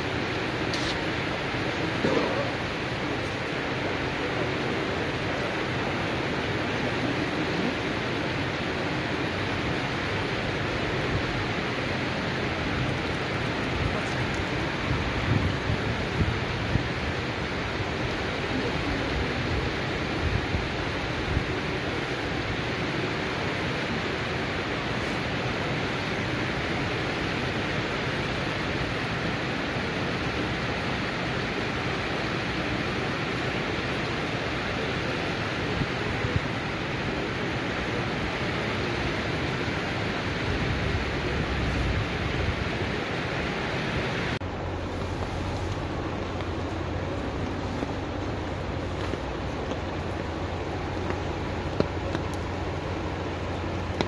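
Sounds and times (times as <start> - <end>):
floodwater rushing: 0.0 - 54.0.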